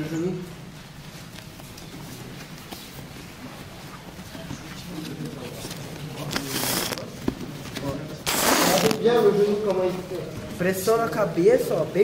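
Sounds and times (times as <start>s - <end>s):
fabric rustling: 0.6s - 10.6s.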